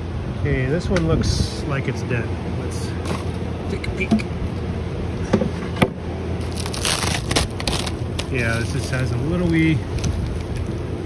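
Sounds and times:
cover sheet crackling as peeled: 0:06.4 - 0:10.8.

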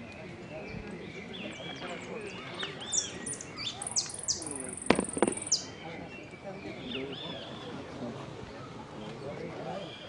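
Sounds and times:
finch singing: 0:00.7 - 0:05.8.

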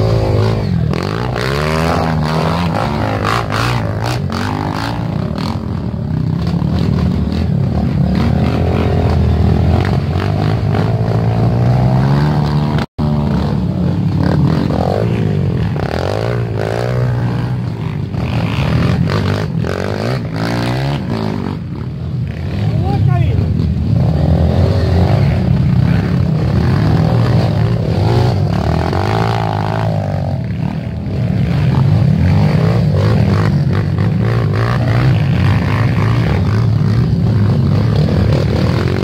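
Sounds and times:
dirt bike engines revving: 0:00.0 - 0:39.0.

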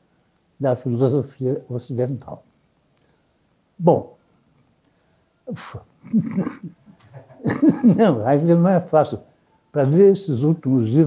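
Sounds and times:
man chuckling softly: 0:05.5 - 0:08.1.

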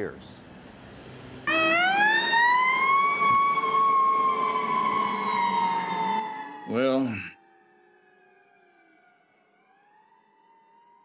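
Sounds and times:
ambulance siren wailing: 0:01.4 - 0:11.0.

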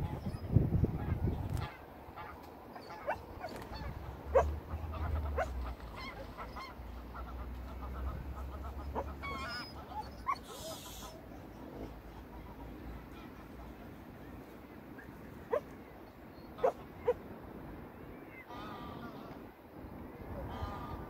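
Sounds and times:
goose-like honks: 0:01.0 - 0:11.2, 0:16.6 - 0:17.2, 0:18.4 - 0:19.4, 0:20.4 - 0:21.0.

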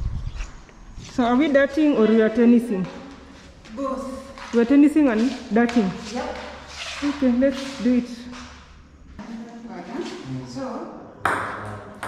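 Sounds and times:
voices: 0:01.1 - 0:08.4.

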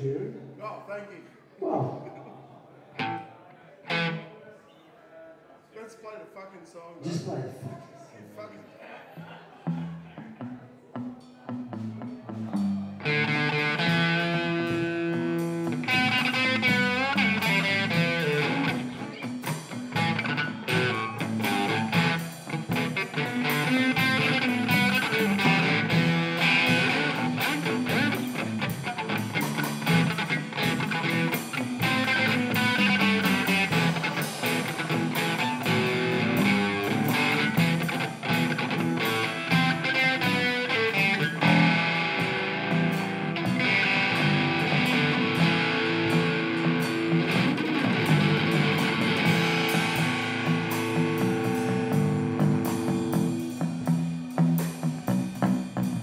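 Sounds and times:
live rock band playing: 0:03.9 - 0:04.2, 0:09.6 - 0:56.0.

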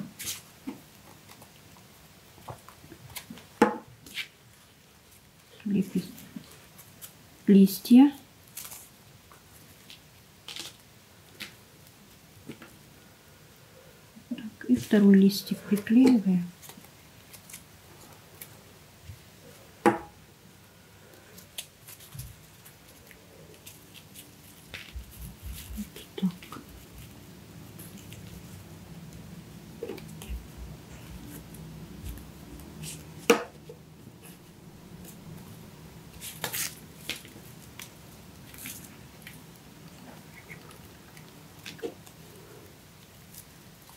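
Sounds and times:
paper rustling: 0:21.1 - 0:28.6, 0:35.0 - 0:42.3.

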